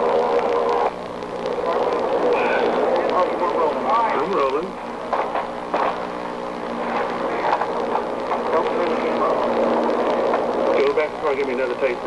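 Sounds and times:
steady hum: 0.0 - 12.0.

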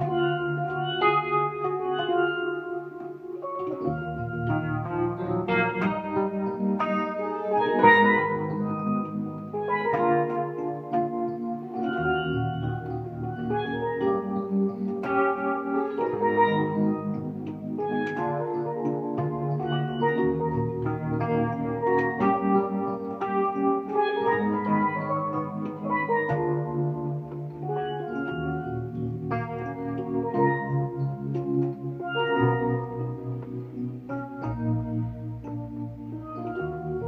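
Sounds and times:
electronic keyboard chords: 0.0 - 37.0
steelpan melody: 0.0 - 37.0.

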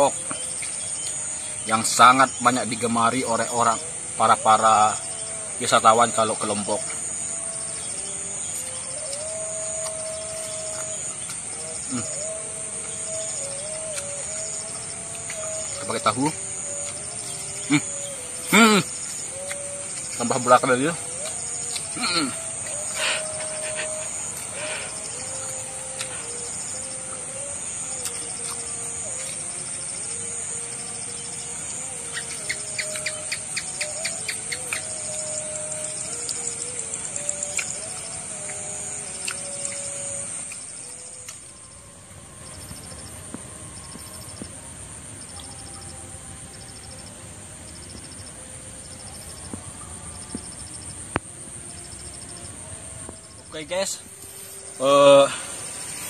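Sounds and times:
crickets buzzing: 0.0 - 56.0
insect chirping in pulses: 0.0 - 56.0
birds calling: 7.6 - 29.5, 31.8 - 41.4.

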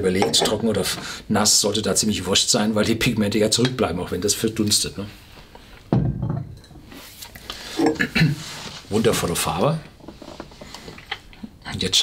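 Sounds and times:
glassware clinking: 0.1 - 0.7, 6.0 - 6.9
glass bottle knocking on table: 5.9 - 6.8.

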